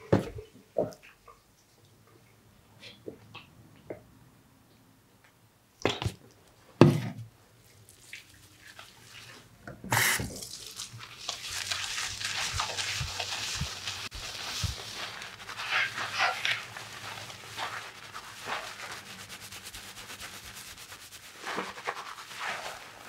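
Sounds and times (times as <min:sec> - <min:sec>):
hands scrubbing lathered hair: 0:07.8 - 0:09.5, 0:10.3 - 0:23.0.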